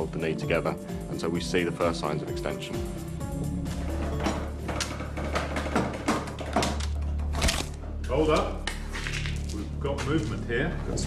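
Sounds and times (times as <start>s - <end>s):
wooden rack clicking and creaking: 3.9s - 8.5s.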